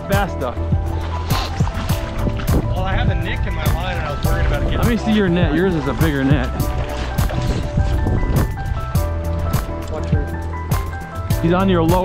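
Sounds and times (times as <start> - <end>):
music with steady beat and bass: 0.0 - 12.0.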